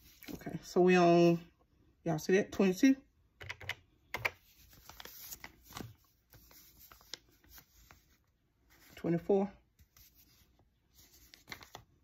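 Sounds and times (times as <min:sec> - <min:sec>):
paper envelope rustling: 0:04.4 - 0:09.0, 0:09.8 - 0:12.0.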